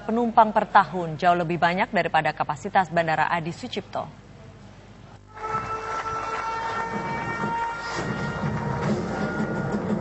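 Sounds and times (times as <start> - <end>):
siren steady horn-like tone: 5.3 - 10.0.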